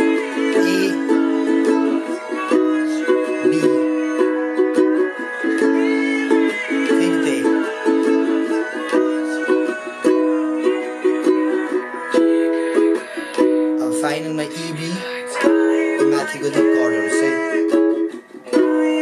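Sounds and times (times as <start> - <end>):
ukulele strumming: 0.0 - 19.0.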